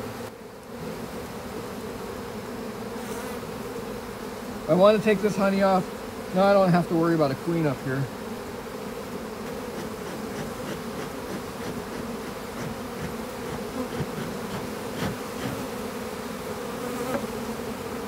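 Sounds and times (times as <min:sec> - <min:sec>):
honeybees buzzing: 0:00.0 - 0:18.0.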